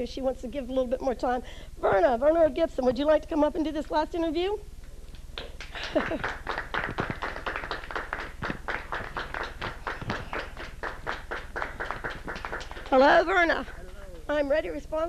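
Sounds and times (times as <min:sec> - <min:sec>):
audience applauding: 0:05.4 - 0:14.3
voices: 0:12.0 - 0:15.0.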